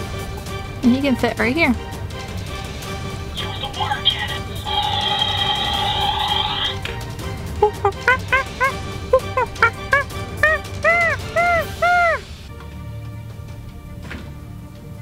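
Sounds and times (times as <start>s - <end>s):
background music: 0.0s - 15.0s
electronic toy sound effect: 4.6s - 6.8s
monkey-like screeches: 4.6s - 6.8s.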